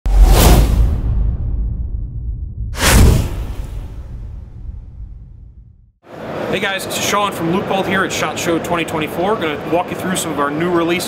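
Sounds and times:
cinematic whoosh: 0.1 - 6.0
deep rumble: 0.1 - 6.0.

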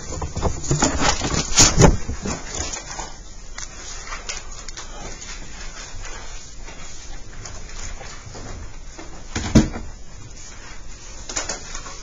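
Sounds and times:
faint rustling and shuffling: 0.0 - 12.0.

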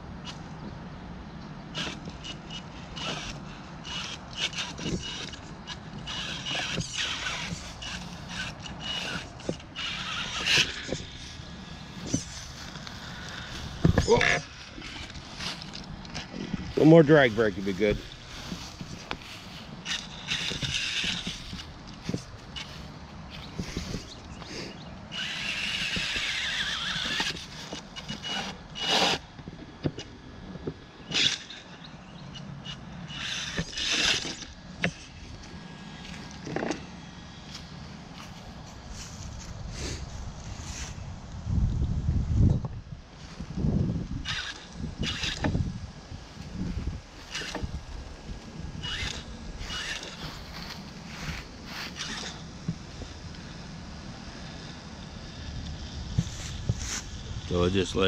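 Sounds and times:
electric motor whining: 1.7 - 30.0, 30.6 - 39.6, 42.4 - 58.0
tyres knocking and scraping on wood: 13.5 - 16.8.

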